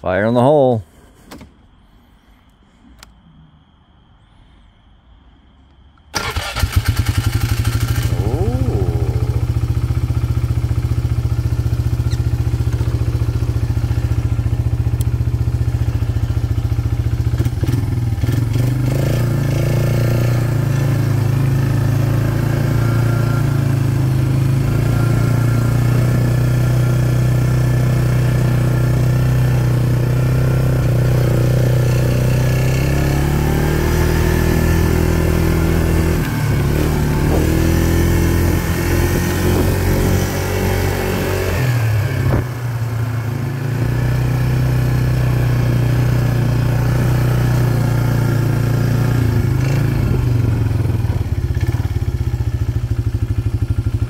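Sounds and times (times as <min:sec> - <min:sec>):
atv engine starting and idling: 0:06.1 - 0:54.0
atv engine revving and pulling away: 0:06.2 - 0:54.0.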